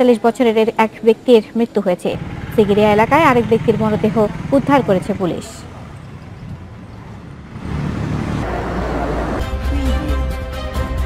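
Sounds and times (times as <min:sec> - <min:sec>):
steady traffic noise: 0:00.0 - 0:11.0
motor vehicle rumble: 0:02.1 - 0:10.4.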